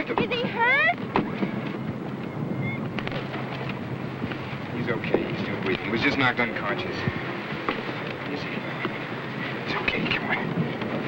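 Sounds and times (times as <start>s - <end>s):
continuous low hum: 0.0s - 11.0s.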